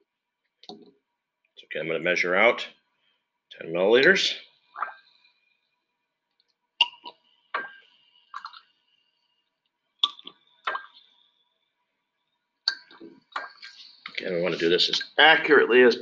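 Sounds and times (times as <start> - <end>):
liquid drops plinking: 6.8 - 8.7, 10.0 - 11.2.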